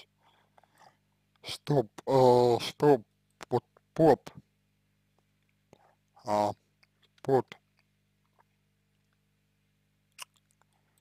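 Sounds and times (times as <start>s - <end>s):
low electrical hum: 0.0s - 11.0s
man's hesitation vowel: 1.4s - 4.4s, 6.2s - 6.6s.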